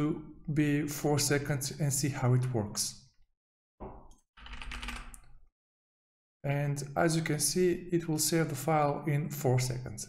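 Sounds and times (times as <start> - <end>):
typing on computer keyboard: 4.4 - 5.3.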